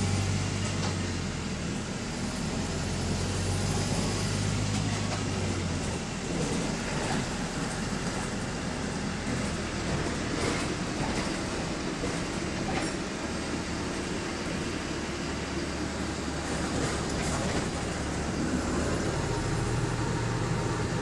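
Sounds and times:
bus rumble: 0.0s - 21.0s.

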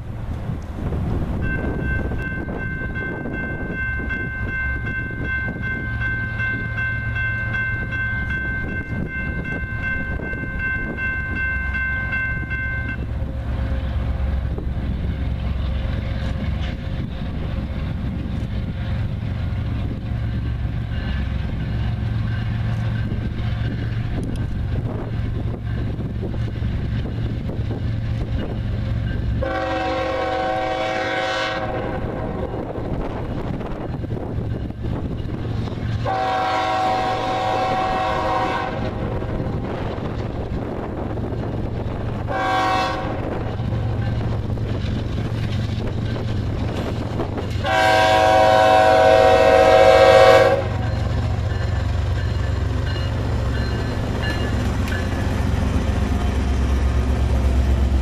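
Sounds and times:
low rumble of locomotives: 0.0s - 58.0s
wind buffeting microphone: 0.0s - 58.0s
train horn blasts: 29.4s - 32.6s, 36.0s - 39.2s, 42.3s - 44.2s, 47.6s - 51.7s.

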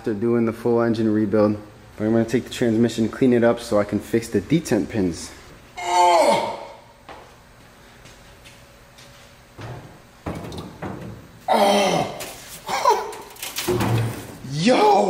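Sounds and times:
man grunting: 5.8s - 6.9s, 11.5s - 13.1s.

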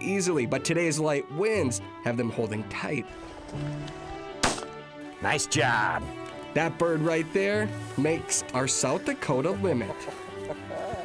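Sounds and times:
background music: 0.0s - 11.0s
shotgun shot: 4.4s - 4.8s.

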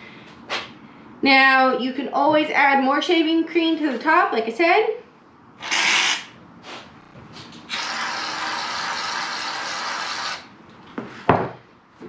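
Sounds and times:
aerosol can hissing: 5.6s - 6.3s.

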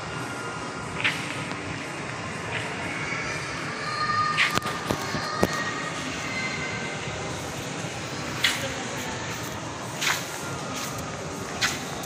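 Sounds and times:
shopping mall room noise: 0.0s - 12.0s.

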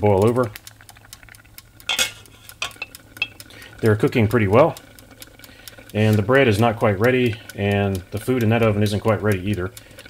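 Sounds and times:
faint ticks: 0.0s - 10.0s
low steady hum: 0.0s - 10.0s
glass lid clinking on pot: 1.9s - 3.4s.

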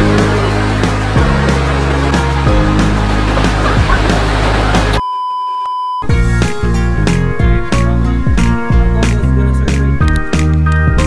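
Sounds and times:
background music: 0.0s - 5.0s, 6.1s - 11.0s
high test-tone beep: 5.0s - 6.1s.

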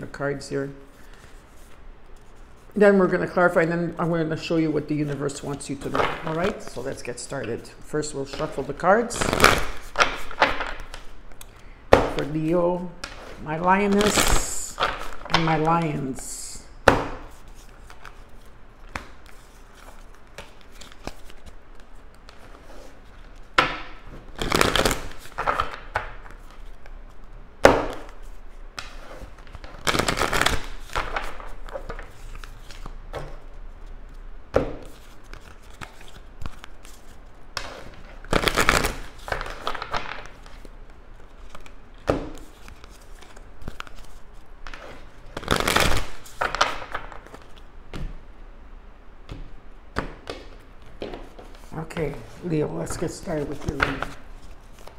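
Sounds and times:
cards being shuffled: 4.4s - 16.3s, 17.0s - 48.2s, 49.3s - 54.9s.

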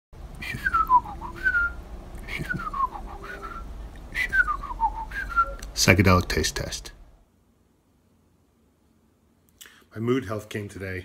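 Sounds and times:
person whistling a tune: 0.4s - 5.7s.

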